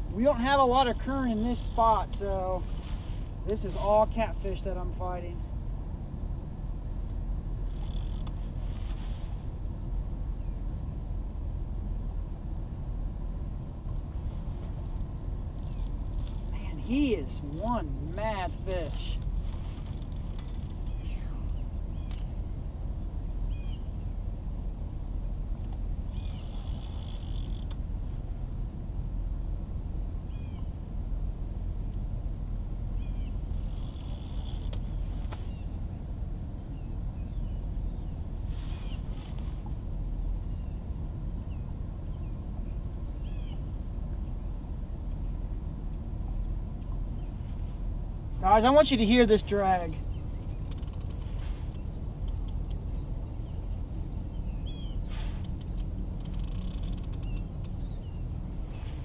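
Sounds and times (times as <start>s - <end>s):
steady low rumble: 0.0s - 59.0s
fishing reel drag buzzing: 7.7s - 8.4s, 14.8s - 21.0s, 26.2s - 27.7s, 33.5s - 34.8s, 50.2s - 51.8s, 55.4s - 57.5s
small birds chirping: 14.7s - 24.1s, 26.1s - 26.7s, 32.9s - 34.3s, 35.3s - 35.8s, 41.4s - 44.5s, 48.4s - 58.9s.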